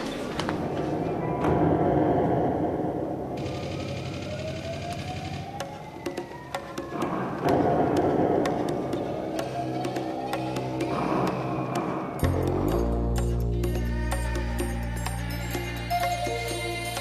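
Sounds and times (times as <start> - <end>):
music with dense low backing: 7.5 - 17.0.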